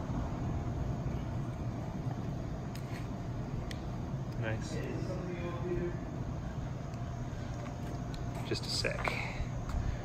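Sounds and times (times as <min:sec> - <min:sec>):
highway traffic rumble: 0:00.0 - 0:10.0.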